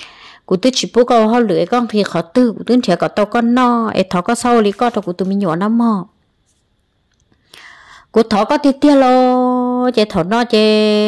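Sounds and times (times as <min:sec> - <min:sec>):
woman's soft in-breath: 0:00.0 - 0:00.5, 0:07.4 - 0:08.1.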